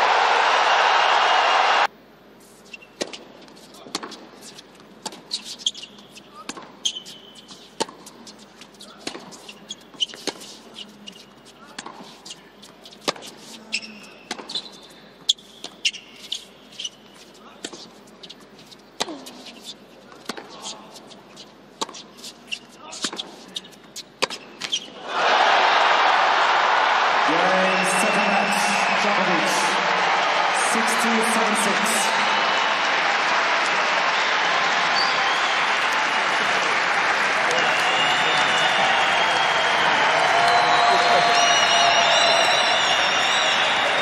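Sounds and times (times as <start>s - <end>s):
crowd cheering and applause: 0.0s - 1.9s, 25.0s - 44.0s
shoe squeaks on court: 2.6s - 25.0s, 34.9s - 35.6s.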